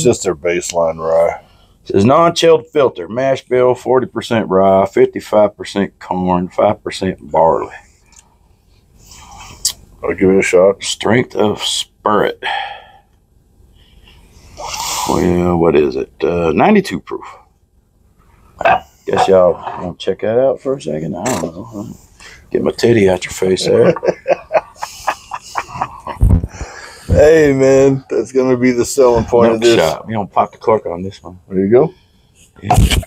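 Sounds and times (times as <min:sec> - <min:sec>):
man laughing: 0:23.3 - 0:28.0, 0:29.0 - 0:29.9, 0:32.6 - 0:33.0
person breathing in: 0:26.5 - 0:27.1.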